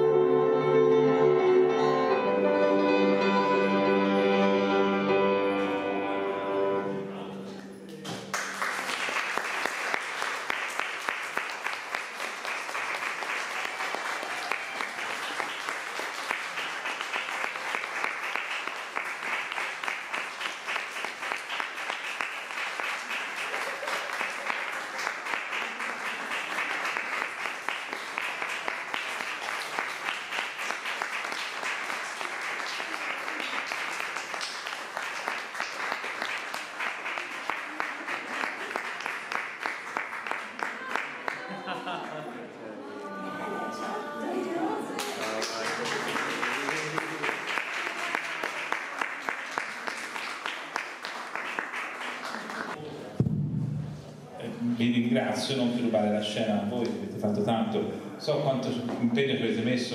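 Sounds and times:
audience applauding: 7.9s - 52.8s.

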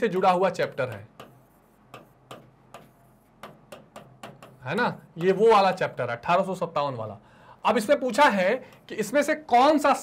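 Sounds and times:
pen tapping on screen: 0.2s - 5.9s.

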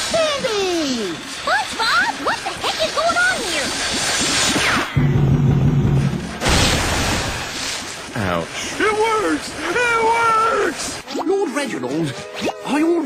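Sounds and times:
loud cartoon crash: 4.5s - 7.8s.

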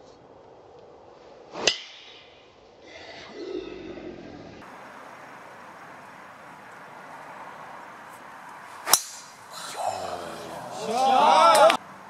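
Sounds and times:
faint outdoor background: 0.0s - 12.0s
golf ball impact crack: 7.9s - 9.6s
golf club swish: 8.8s - 9.4s.

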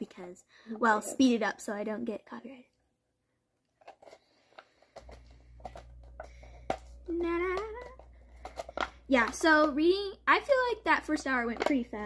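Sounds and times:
foil lid crinkling and clicking: 3.8s - 9.7s, 10.5s - 12.0s.

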